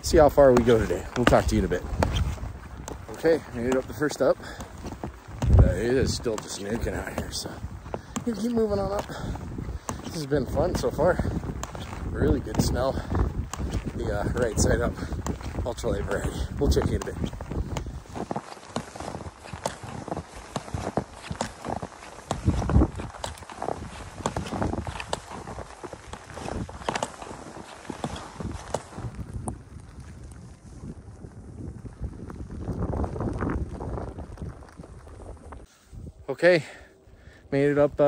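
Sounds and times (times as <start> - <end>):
skis sliding through powder snow: 0.0 - 36.8
poles planting in snow: 0.0 - 38.0.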